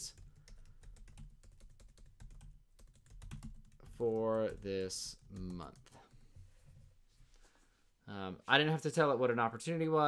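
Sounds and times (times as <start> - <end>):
computer keyboard typing: 0.0 - 6.2.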